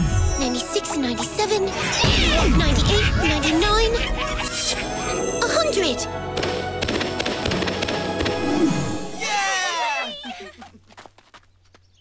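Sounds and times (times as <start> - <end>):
music: 0.0 - 9.4.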